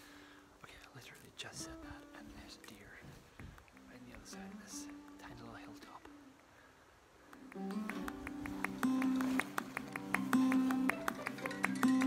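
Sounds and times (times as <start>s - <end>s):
man whispering: 0.6s - 6.2s
soft background music: 0.8s - 3.2s, 3.8s - 6.1s.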